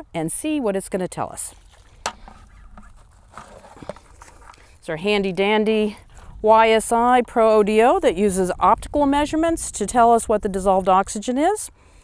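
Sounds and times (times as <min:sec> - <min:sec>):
light handling knocks and rustles: 0:01.7 - 0:04.6.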